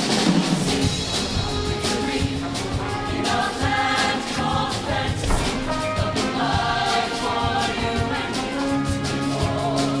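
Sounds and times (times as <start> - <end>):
choir singing: 0.0 - 10.0
drum and cymbal hits: 0.0 - 10.0
live band playing: 0.0 - 10.0.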